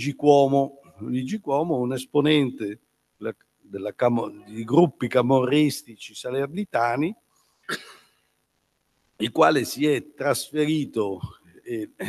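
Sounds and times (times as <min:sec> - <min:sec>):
man speaking: 0:00.0 - 0:02.8, 0:03.8 - 0:07.1, 0:09.2 - 0:12.0
man clearing throat: 0:07.7 - 0:08.0.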